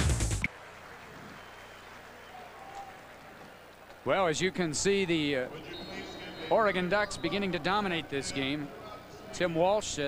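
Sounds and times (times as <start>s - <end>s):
faint crowd noise: 0.4s - 10.0s.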